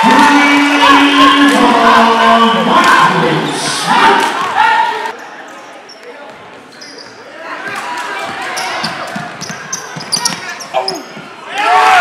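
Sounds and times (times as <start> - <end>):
crowd voices in large hall: 0.0 - 12.0
sneakers squeaking: 4.4 - 11.5.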